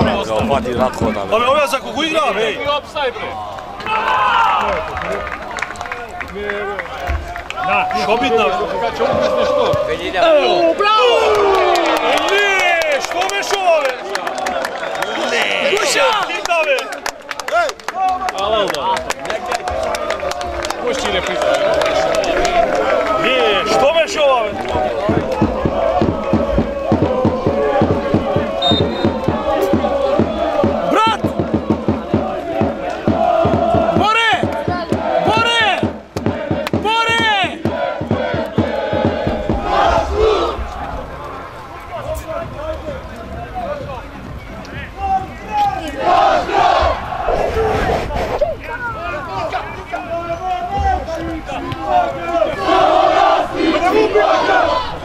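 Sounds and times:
crowd shouting and chanting: 0.0 - 55.0.

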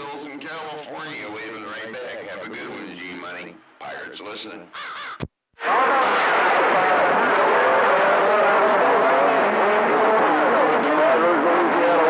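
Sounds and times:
garbled radio stations overlapping: 0.0 - 12.0.

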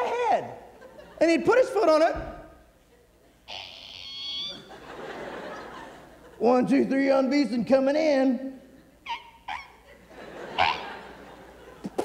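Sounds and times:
audience laughter: 0.8 - 1.4, 4.4 - 6.4, 9.8 - 12.0.

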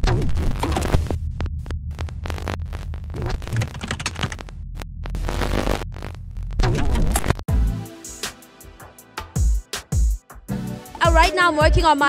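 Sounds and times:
digital static crackles: 0.0 - 7.5
low pulsing electronic hum: 1.0 - 6.6.

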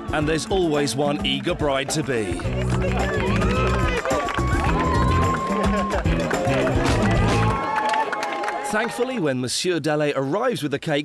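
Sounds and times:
crowd of excited voices: 0.0 - 9.2
music with heavy bass line: 1.6 - 7.6
long high held cry: 2.8 - 6.1.

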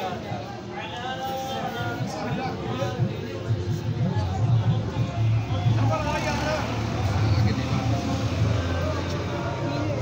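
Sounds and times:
road traffic rumble: 1.6 - 10.0.

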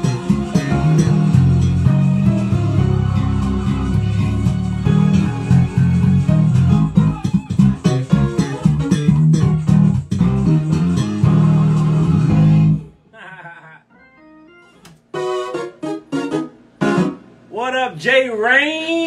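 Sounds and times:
bass guitar line: 0.0 - 13.0.

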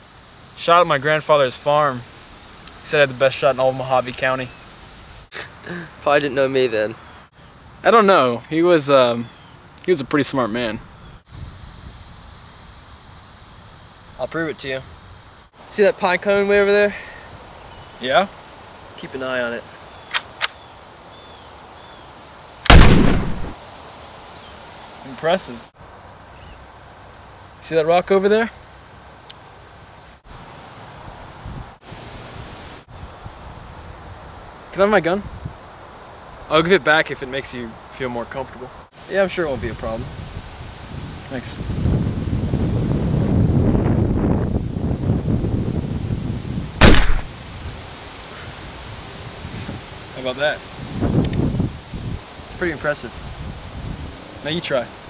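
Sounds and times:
rifle shot with echo: 22.7 - 23.6, 46.8 - 47.3
wind rumbling on microphone: 31.1 - 31.8, 35.2 - 35.6, 39.5 - 47.8, 48.6 - 50.0, 50.7 - 54.2.

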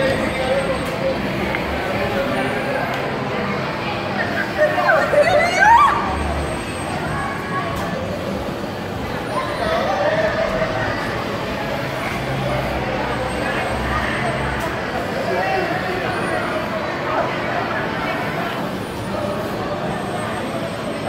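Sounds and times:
hubbub of crowd voices: 0.0 - 21.0.

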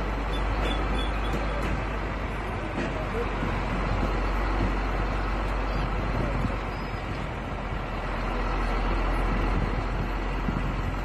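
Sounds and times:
vehicle road and engine noise: 0.0 - 11.0.

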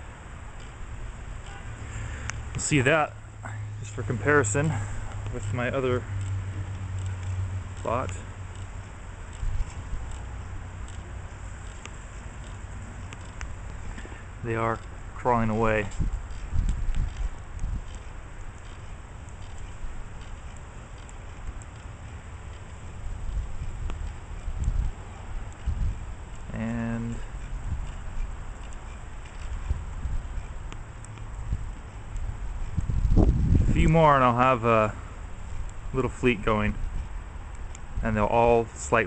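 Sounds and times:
wind rumble on microphone: 3.7 - 39.0.

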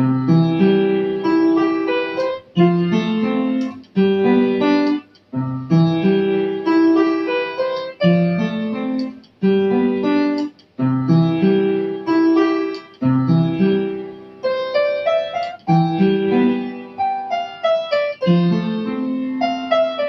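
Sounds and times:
upright piano melody over chords: 0.0 - 20.0.

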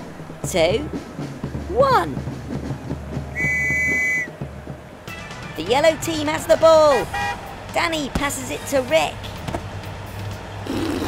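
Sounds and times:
referee's whistle: 3.4 - 4.3.

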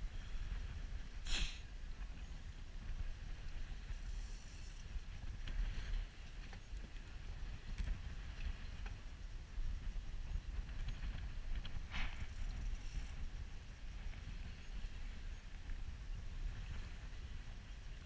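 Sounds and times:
wind rumbling on microphone: 0.0 - 18.0
brief hiss: 1.2 - 1.7.

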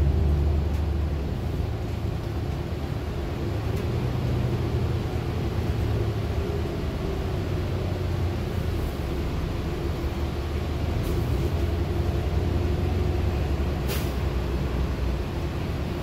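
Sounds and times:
bus engine and road rumble: 0.0 - 16.0.

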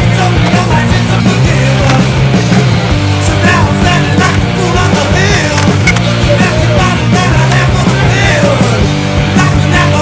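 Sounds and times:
loud punk rock music: 0.0 - 10.0.

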